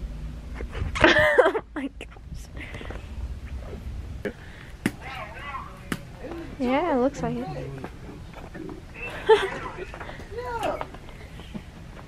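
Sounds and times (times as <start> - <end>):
person speaking: 4.9 - 8.0.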